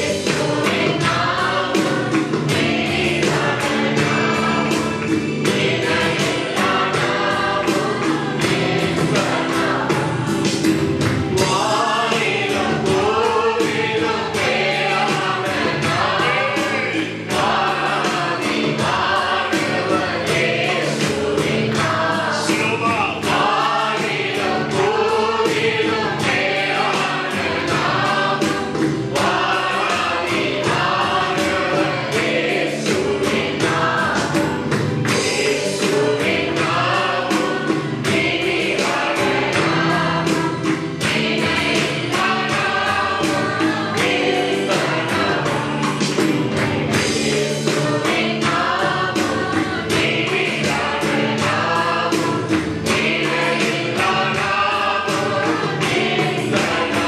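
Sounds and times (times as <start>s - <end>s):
men singing into microphones: 0.0s - 57.0s
musical backing with steady beat: 0.0s - 57.0s.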